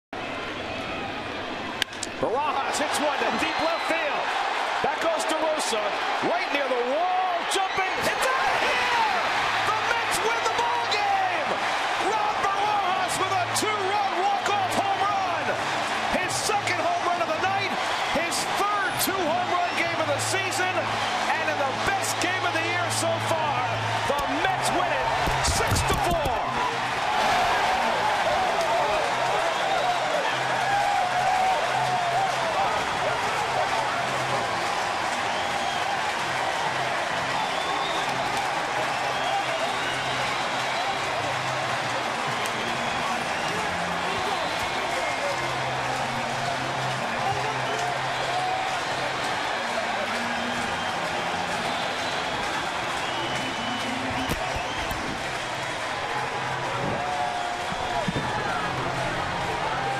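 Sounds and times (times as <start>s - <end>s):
crowd cheering and shouting: 0.2s - 59.9s
sharp claps: 24.0s - 26.5s, 46.4s - 58.6s
whistles: 37.4s - 38.3s, 39.0s - 41.0s, 44.2s - 44.9s, 51.6s - 55.2s, 57.4s - 58.6s.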